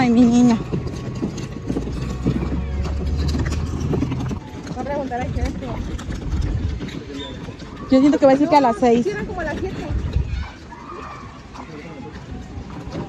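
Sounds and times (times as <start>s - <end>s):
cooler wheels rattling over cobblestones: 0.0s - 13.0s
faint voices: 2.0s - 13.0s.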